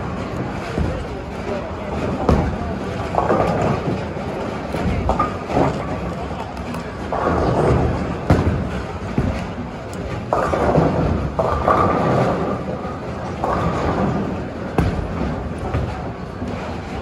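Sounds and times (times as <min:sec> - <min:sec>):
bowling balls rolling: 0:00.0 - 0:17.0.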